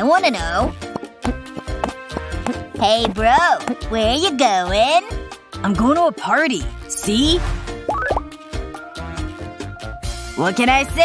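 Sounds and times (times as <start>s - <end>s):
upbeat background music: 0.0s - 11.0s.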